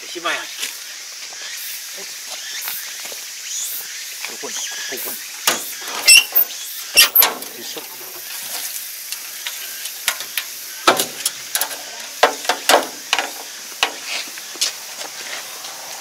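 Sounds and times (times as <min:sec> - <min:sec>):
metallic knocks and clicks: 0:10.1 - 0:14.0.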